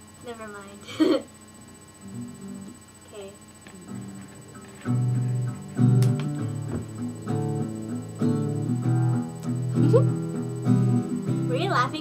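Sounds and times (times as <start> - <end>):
acoustic guitar strumming chords: 3.8 - 12.0.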